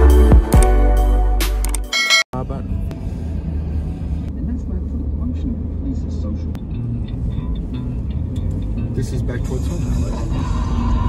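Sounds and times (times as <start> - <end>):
road and engine rumble in car: 2.4 - 11.0.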